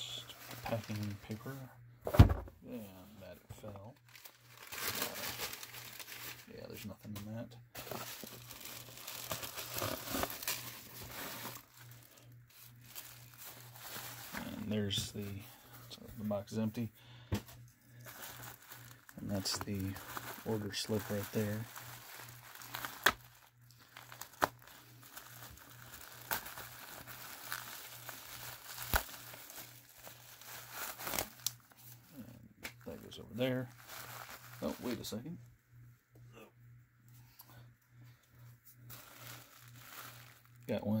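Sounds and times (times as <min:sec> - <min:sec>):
bubble wrap crackles: 0:00.1 - 0:01.6, 0:03.8 - 0:06.8, 0:07.8 - 0:16.8, 0:17.6 - 0:35.2, 0:38.7 - 0:41.0
packing material crinkling: 0:00.1 - 0:01.6, 0:03.8 - 0:07.2, 0:07.8 - 0:16.8, 0:17.5 - 0:35.2, 0:38.8 - 0:41.0.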